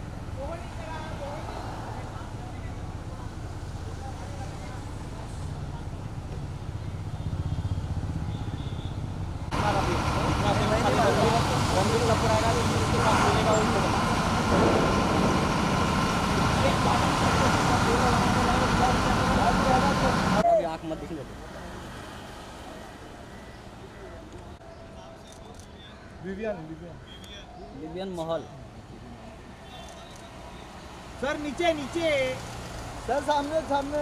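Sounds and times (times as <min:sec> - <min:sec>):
traffic noise: 0:00.0 - 0:34.0
low rumble: 0:13.8 - 0:18.6.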